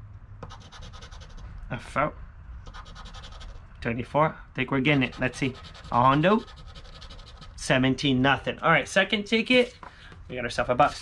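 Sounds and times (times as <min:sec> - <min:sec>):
scratching lottery ticket: 0:00.4 - 0:01.4, 0:02.7 - 0:03.6, 0:04.9 - 0:07.8.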